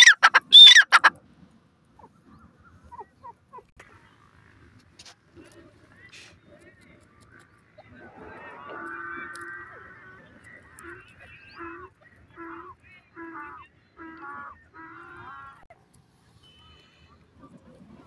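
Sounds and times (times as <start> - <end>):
francolin calling: 0.0 - 1.1.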